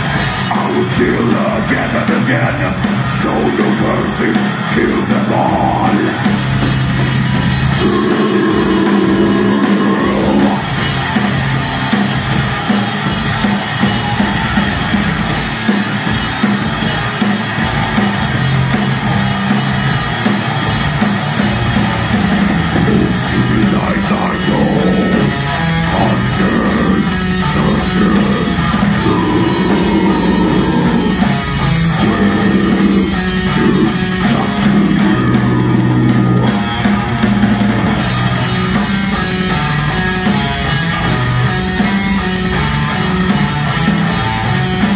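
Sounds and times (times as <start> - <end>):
bass guitar: 0.0 - 44.9
distorted electric guitars: 0.0 - 44.9
drum kit: 0.0 - 44.9
person shouting vocals: 22.8 - 31.2.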